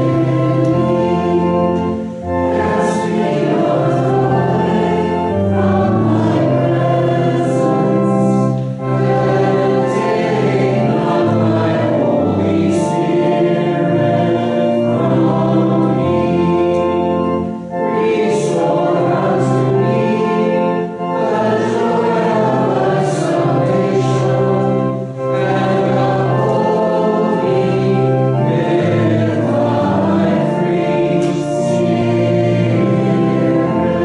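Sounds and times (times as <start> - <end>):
congregation singing a hymn: 0.0 - 34.0
sustained low accompaniment: 0.0 - 34.0.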